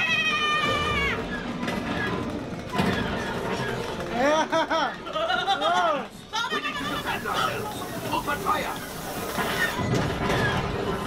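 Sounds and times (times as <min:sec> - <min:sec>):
low rumbling of train: 0:00.0 - 0:11.0.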